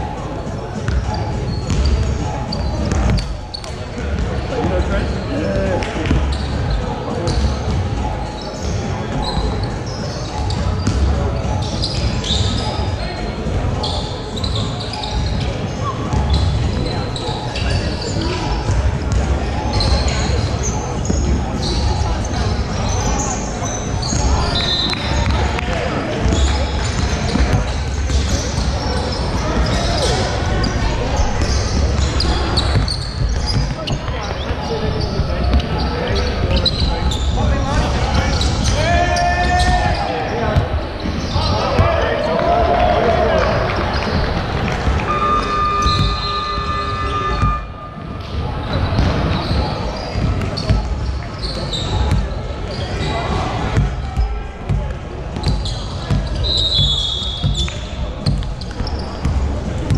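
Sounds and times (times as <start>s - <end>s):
players shouting: 28.0s - 54.7s
basketball bouncing on hardwood: 45.8s - 46.2s, 53.7s - 59.9s.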